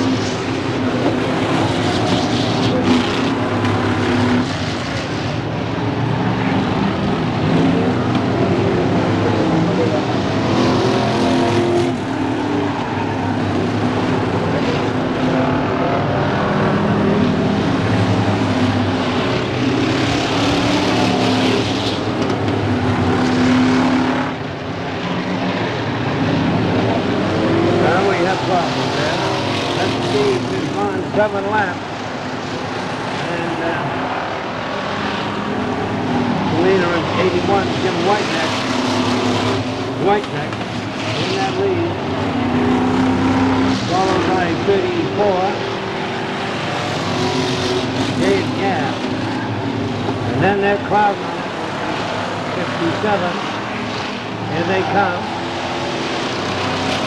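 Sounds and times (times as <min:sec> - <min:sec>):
race car engines running hard: 0:00.0 - 0:57.0.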